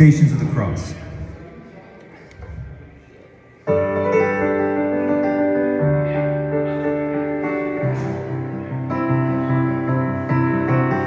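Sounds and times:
low room murmur: 0.0 - 11.0
piano chords ringing: 3.7 - 11.0.

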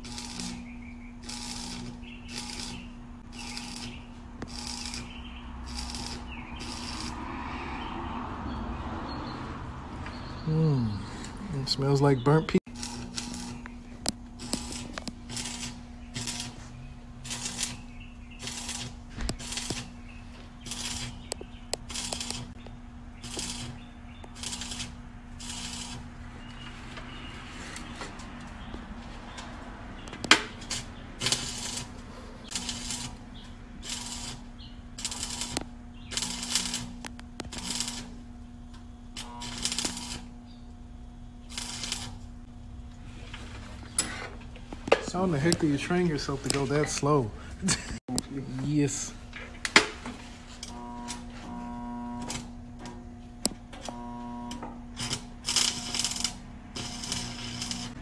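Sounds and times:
welding arc crackling: 0.0 - 7.3, 12.7 - 26.2, 30.0 - 40.8, 41.4 - 42.9, 50.5 - 52.6, 53.7 - 58.0.

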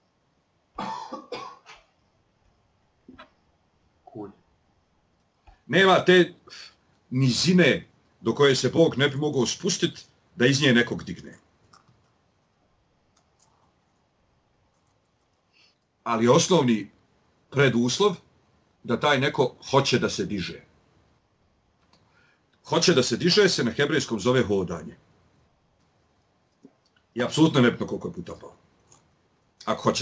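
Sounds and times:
person coughing: 0.8 - 1.9
faint clicks: 11.6 - 12.5, 13.1 - 14.0, 25.8 - 27.1.

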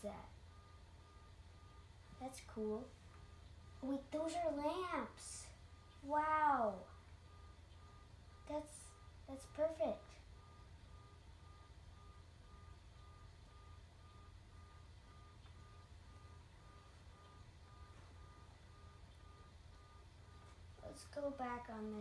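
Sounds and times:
faint high beep: 0.0 - 22.0
low hum: 0.0 - 22.0.

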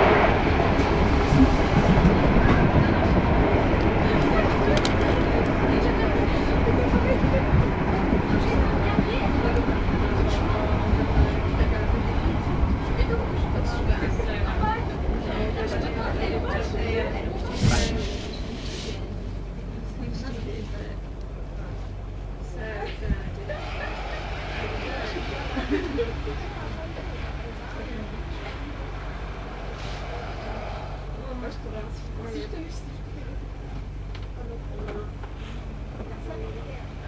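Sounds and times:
faint voices: 0.0 - 37.0
train carriage rumble: 0.0 - 37.0
people talking: 1.3 - 37.0.

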